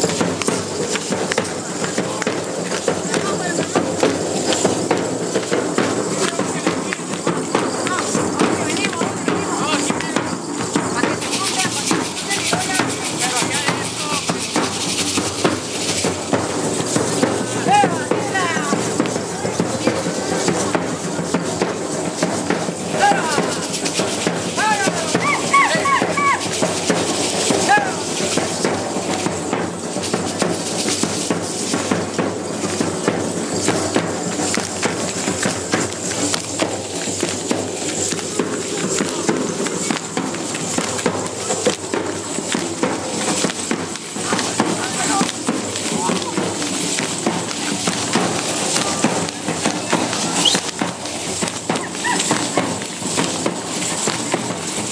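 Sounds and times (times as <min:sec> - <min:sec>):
hand rattles shaking: 0:00.0 - 0:17.6
voices calling out: 0:00.0 - 0:30.0, 0:32.4 - 0:54.5
cane-fringed skirts shaking: 0:00.0 - 0:54.9
drum beat: 0:00.0 - 0:54.9.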